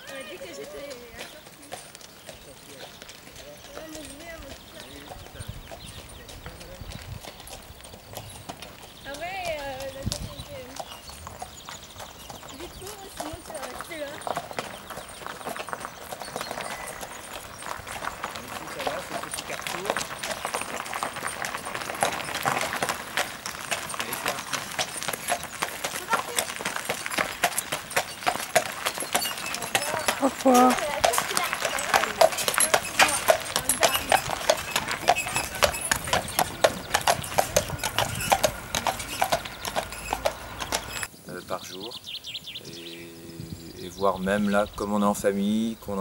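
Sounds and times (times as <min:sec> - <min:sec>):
horse hooves clip-clopping on road: 0:00.0 - 0:41.1.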